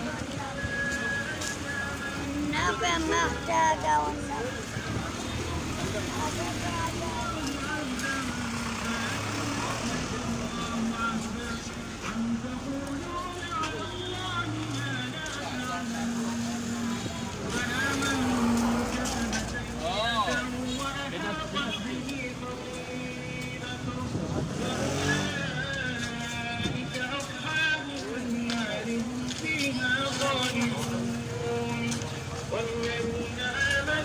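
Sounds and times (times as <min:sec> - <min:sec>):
market bustle: 0:00.0 - 0:34.0
people's voices: 0:00.0 - 0:34.0
street traffic: 0:00.0 - 0:34.0.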